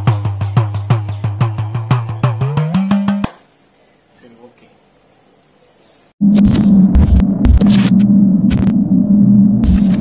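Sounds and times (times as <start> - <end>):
static crackle and clicks: 6.2 - 8.9, 9.6 - 10.0
loud electric buzz: 6.2 - 10.0.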